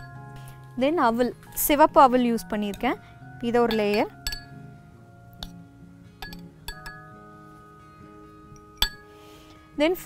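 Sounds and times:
background music: 0.0s - 10.0s
spoon clinking on wine glass: 3.6s - 4.6s, 6.2s - 7.1s, 8.6s - 9.1s.

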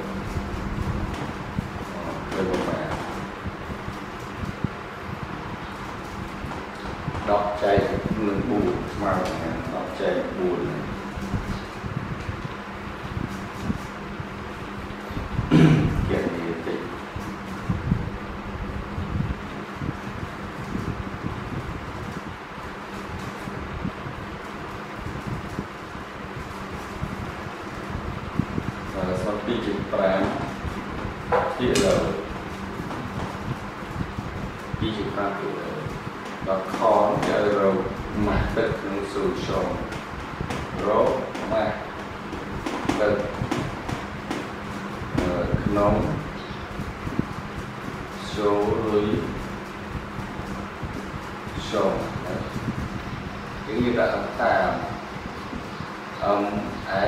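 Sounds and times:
low background noise: 0.0s - 57.0s
steady rushing noise: 0.0s - 57.0s
unsteady low rumble: 0.0s - 57.0s
marker pen writing on whiteboard: 29.9s - 33.5s.

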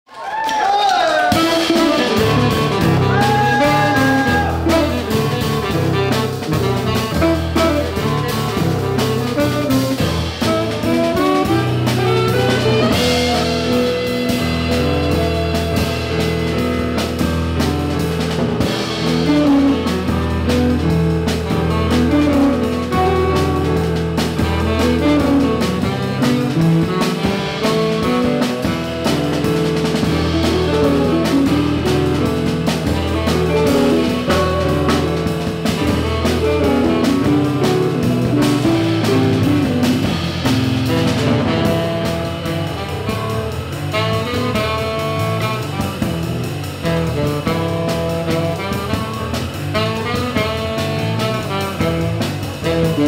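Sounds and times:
drum kit: 0.7s - 53.0s
electric guitar: 1.2s - 43.7s
saxophone melody: 1.2s - 53.0s
electric keyboard: 1.3s - 53.0s
upright double bass: 1.3s - 53.0s.

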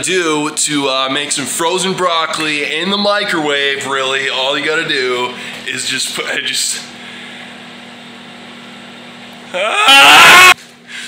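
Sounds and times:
microwave oven humming: 0.0s - 11.0s.

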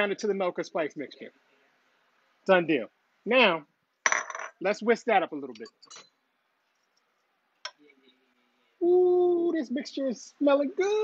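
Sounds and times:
man speaking: 0.0s - 1.4s, 4.6s - 5.8s, 7.7s - 11.0s.

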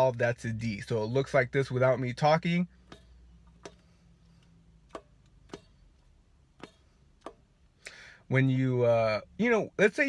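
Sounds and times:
trumpet valve clicks: 2.8s - 8.0s.

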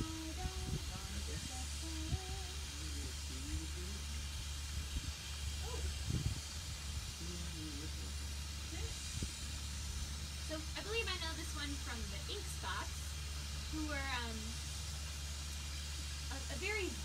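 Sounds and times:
soft low bumps: 0.0s - 14.6s
constant low rumble: 0.0s - 17.0s
steady hiss: 0.0s - 17.0s.

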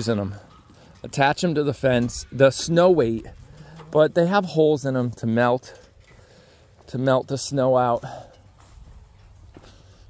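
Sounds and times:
faint footsteps on grass and straw: 0.0s - 10.0s.

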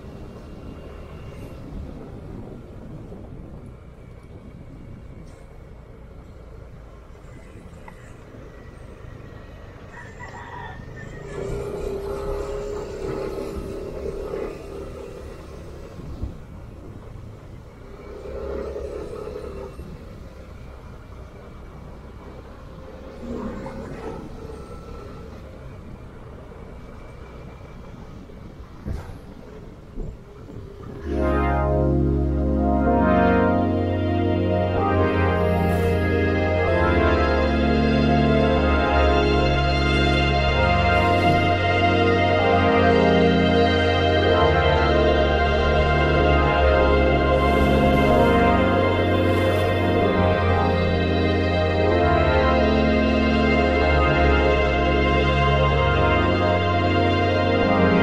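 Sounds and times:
wind on microphone: 0.0s - 36.8s
scooter engine rumble: 0.0s - 54.3s.

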